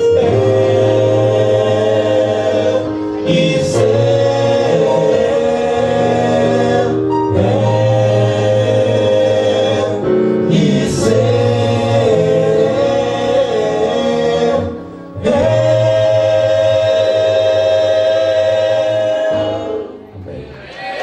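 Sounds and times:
male a cappella group singing: 0.0s - 20.4s.

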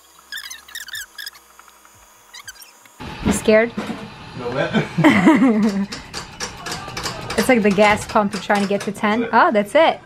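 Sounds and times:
short high squeaks: 0.2s - 1.5s, 2.3s - 2.9s.

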